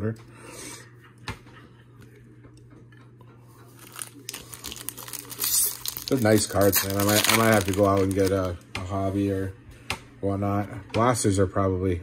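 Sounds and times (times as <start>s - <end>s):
foil pack crinkling as torn open: 3.7s - 8.6s.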